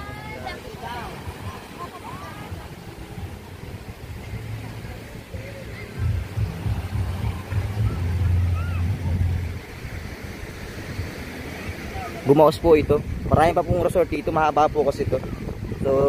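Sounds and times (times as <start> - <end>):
faint surf: 0.0 - 16.0
wind buffeting microphone: 0.0 - 16.0.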